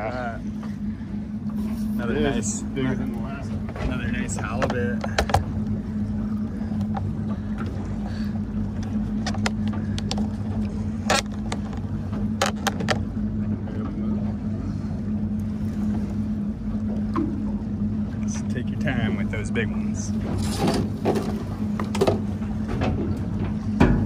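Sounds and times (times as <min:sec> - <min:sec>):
boat motor idling: 0:00.0 - 0:24.0.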